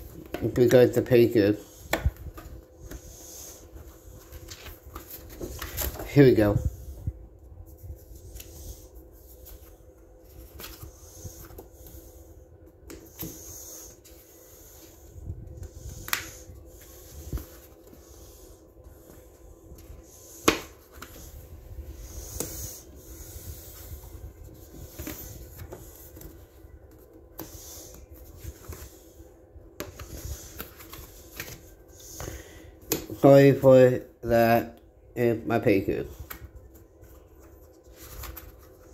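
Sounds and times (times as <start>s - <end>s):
faint steady hum: 0.0s - 38.9s
paper rustling and rubbing: 1.6s - 7.0s, 7.6s - 12.1s, 13.0s - 29.2s, 36.2s - 38.9s.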